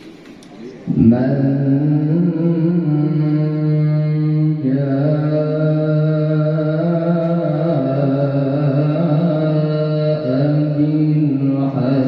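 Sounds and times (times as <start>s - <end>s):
man chanting into a microphone: 0.8s - 12.0s.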